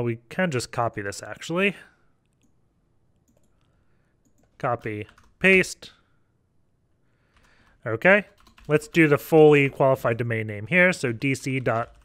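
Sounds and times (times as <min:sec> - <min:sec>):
faint computer mouse clicks: 0:03.2 - 0:04.5.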